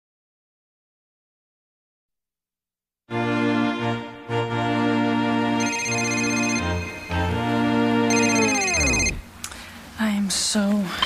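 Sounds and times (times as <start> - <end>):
trilling phone ring: 5.6 - 7.4, 8.1 - 9.2
music tape-stop effect: 5.6 - 9.2.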